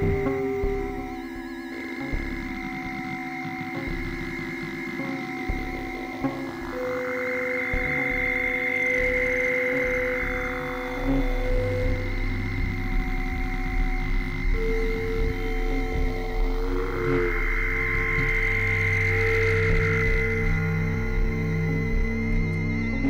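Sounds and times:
pulsing low bass: 0:00.0 - 0:02.8, 0:05.4 - 0:23.0
synthesizer drone tones: 0:00.0 - 0:23.0.

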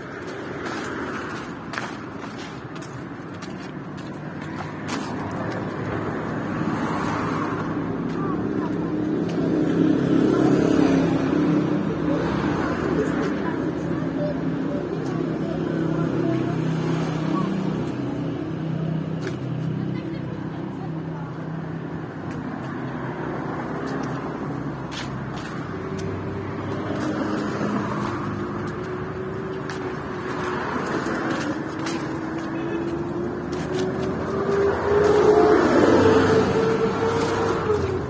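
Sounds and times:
car passing: 0:04.1 - 0:19.1, 0:21.4 - 0:38.0.

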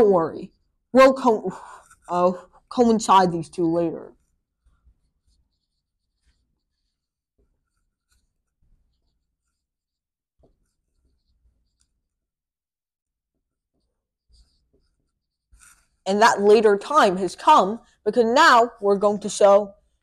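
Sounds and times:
marker writing on whiteboard: 0:00.0 - 0:12.3, 0:13.3 - 0:20.0.

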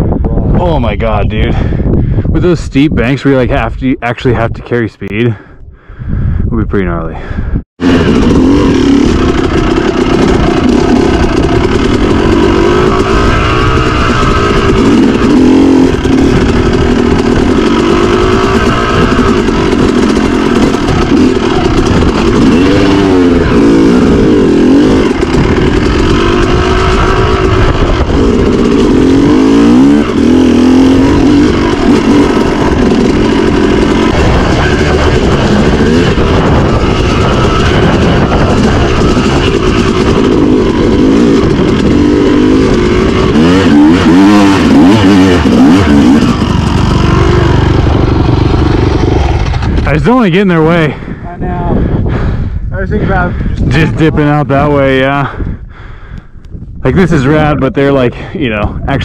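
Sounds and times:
dirt bike engine revving: 0:07.8 - 0:55.4, 0:56.9 - 0:59.0.

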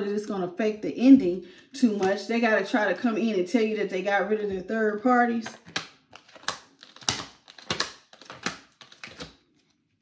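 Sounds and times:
cards being shuffled: 0:05.4 - 0:09.7.

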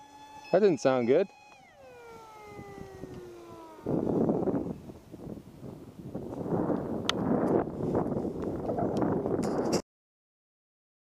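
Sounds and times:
electric motor and propeller whining: 0:00.0 - 0:09.8
sharp clicks: 0:00.4 - 0:03.3.

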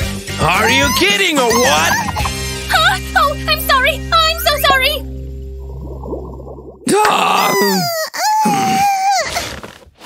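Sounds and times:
cartoon character wailing: 0:00.6 - 0:02.3, 0:07.0 - 0:09.0.

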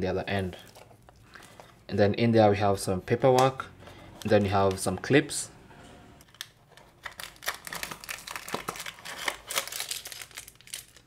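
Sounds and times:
plastic packet crinkling: 0:06.3 - 0:11.0.

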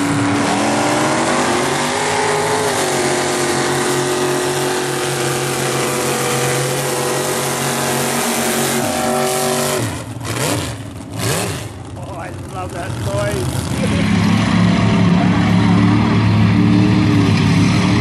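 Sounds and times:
truck engines revving: 0:00.0 - 0:18.0.

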